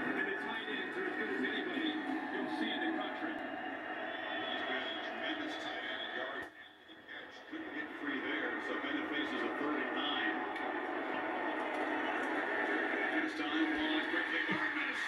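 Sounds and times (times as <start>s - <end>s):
stadium crowd noise through tv: 0.0s - 15.0s.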